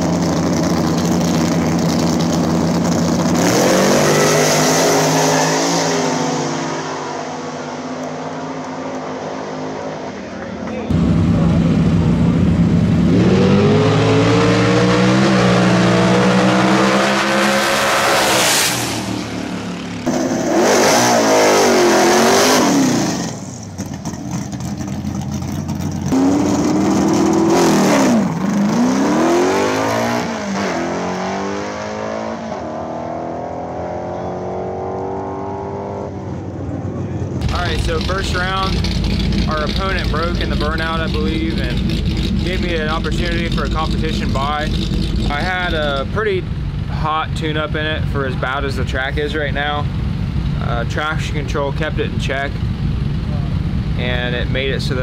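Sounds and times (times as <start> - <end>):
race car engines accelerating: 0.0 - 55.0
voices: 10.0 - 11.7
low rumbling sound: 10.1 - 16.6, 36.2 - 55.0.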